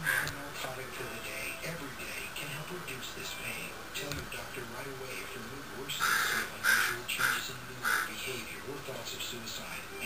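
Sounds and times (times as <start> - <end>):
crow cawing: 0.0 - 0.3, 6.0 - 8.1.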